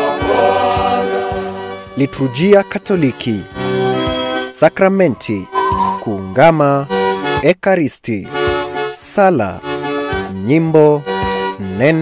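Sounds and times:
gospel choir singing: 0:00.0 - 0:02.0.

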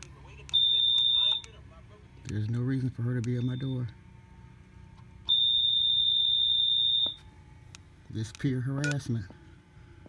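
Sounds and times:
high-pitched electronic beep: 0:03.3 - 0:03.9.

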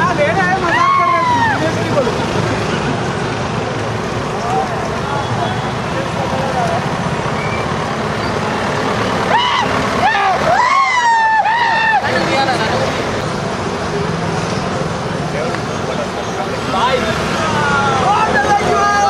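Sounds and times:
road traffic: 0:00.0 - 0:19.0
truck rumble: 0:00.0 - 0:19.0
people shouting: 0:00.4 - 0:01.9, 0:09.2 - 0:12.6, 0:17.3 - 0:19.0.

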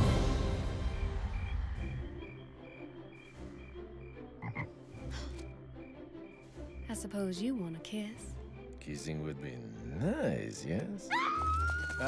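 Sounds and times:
music: 0:00.0 - 0:12.0
frogs chirping: 0:00.8 - 0:07.2.

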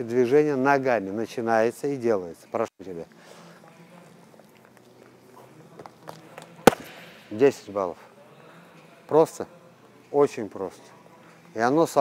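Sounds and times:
boxing glove slapping punch mitt: 0:06.7 - 0:07.2.

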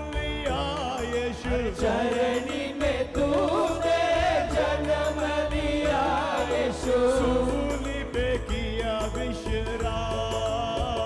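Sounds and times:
keyboard: 0:00.0 - 0:11.0
men singing into microphones: 0:00.0 - 0:11.0
steady bass: 0:00.0 - 0:11.0.

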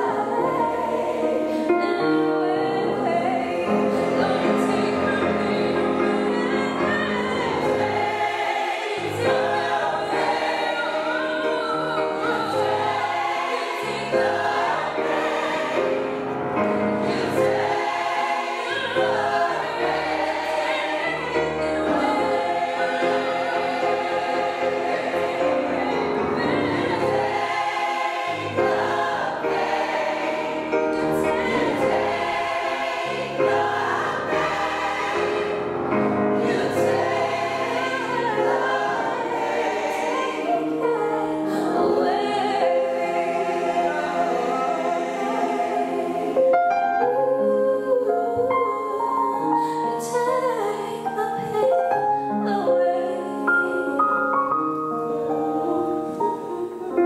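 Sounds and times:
gospel choir singing: 0:00.0 - 0:57.0
piano accompaniment: 0:00.0 - 0:57.0.

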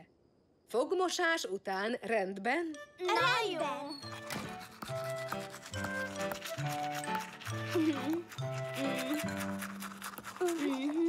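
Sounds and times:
light background music: 0:01.9 - 0:11.0
toothbrush scrubbing: 0:04.1 - 0:11.0
person speaking: 0:05.8 - 0:11.0.

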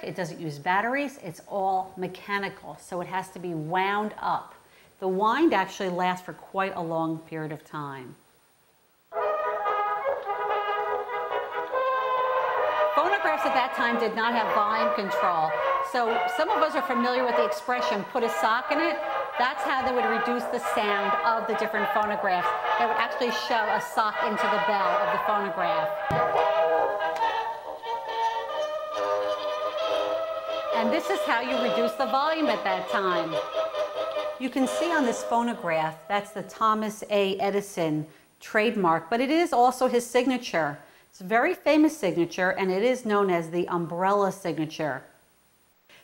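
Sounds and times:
thin brass music from phonograph: 0:09.1 - 0:37.0
sharp knock: 0:26.0 - 0:26.5.

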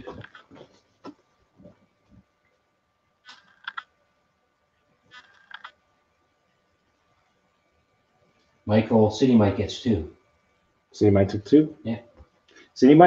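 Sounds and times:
faint steady hum: 0:00.0 - 0:13.0
small clicks: 0:03.2 - 0:03.9, 0:05.1 - 0:05.8.

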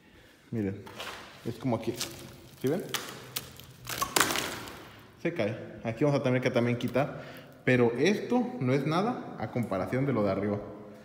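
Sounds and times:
plaster cracking: 0:00.9 - 0:05.0.

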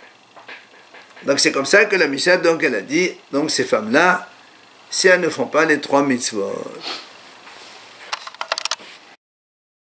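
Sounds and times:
faint room hiss: 0:00.0 - 0:09.2.

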